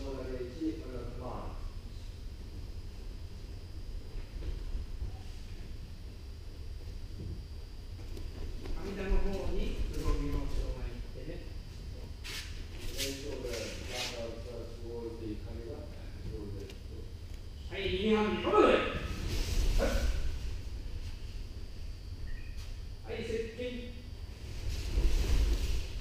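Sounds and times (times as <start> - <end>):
indistinct speech: 17.7 - 19.1.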